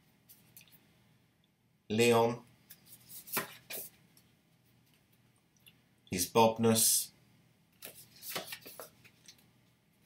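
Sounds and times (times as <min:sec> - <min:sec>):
postcards tapping and rustling: 0:03.0 - 0:04.0, 0:07.8 - 0:09.4.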